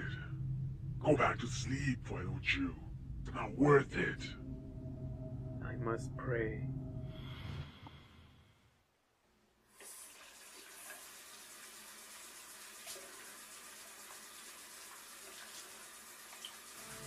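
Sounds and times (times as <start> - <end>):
tap water running into sink: 9.8 - 16.9.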